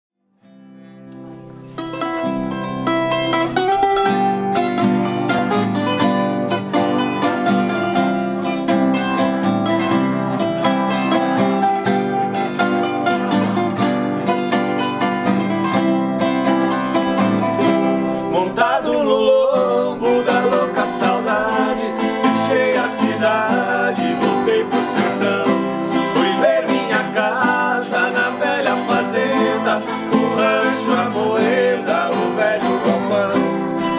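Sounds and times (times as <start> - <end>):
strummed guitar chords: 0.4 - 33.9.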